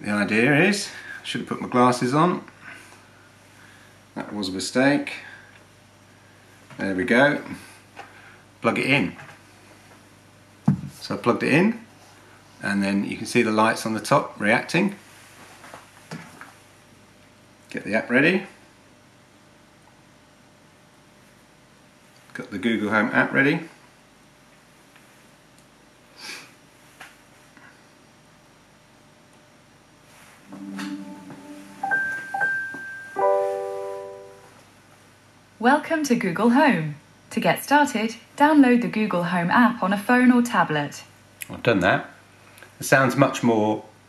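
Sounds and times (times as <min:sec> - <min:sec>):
smart speaker start-up chime: 0:30.5 - 0:34.6.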